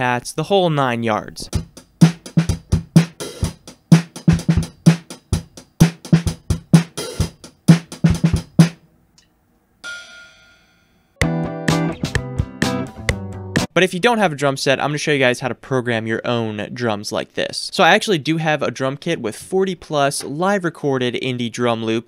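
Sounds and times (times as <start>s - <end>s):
muted drum kit groove: 1.4s - 8.8s, 11.2s - 13.8s
guitar chords over drums: 11.2s - 13.7s.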